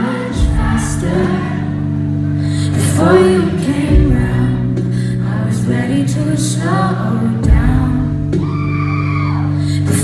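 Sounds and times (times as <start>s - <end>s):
live pop band playing: 0.0s - 10.0s
person singing: 0.0s - 10.0s.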